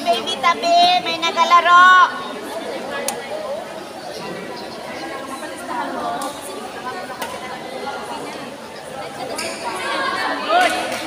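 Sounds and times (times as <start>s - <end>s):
spectators chattering: 0.0s - 11.0s.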